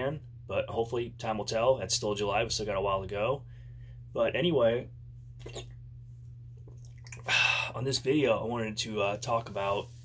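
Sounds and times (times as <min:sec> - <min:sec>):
steady low hum: 0:00.0 - 0:10.0
man gulping from bottle: 0:05.4 - 0:05.8, 0:06.6 - 0:07.8.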